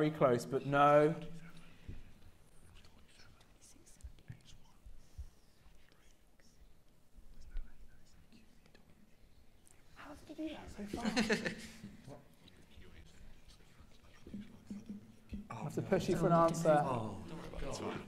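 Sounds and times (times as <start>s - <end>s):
people whispering: 1.0s - 18.0s.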